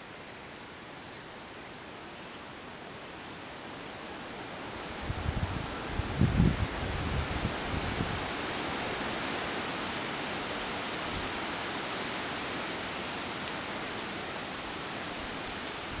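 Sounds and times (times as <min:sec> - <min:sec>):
outdoor ambience hiss: 0:00.0 - 0:16.0.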